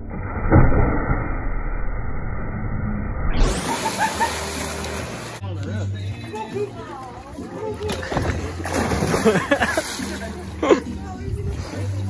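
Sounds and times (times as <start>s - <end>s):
loud splash into pool: 3.4s - 5.4s, 8.2s - 10.3s
water churning: 3.4s - 5.4s, 7.0s - 12.0s.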